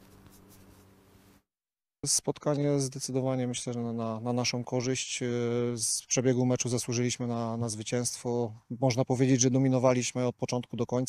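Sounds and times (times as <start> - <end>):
low steady hum: 0.0 - 1.4.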